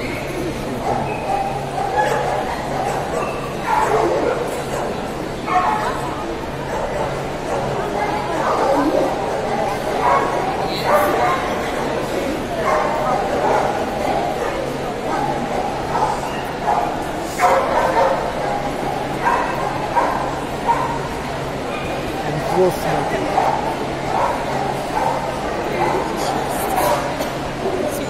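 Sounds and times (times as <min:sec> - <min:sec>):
crowd chatter: 0:00.0 - 0:28.0
dogs yipping and whimpering: 0:00.8 - 0:04.9.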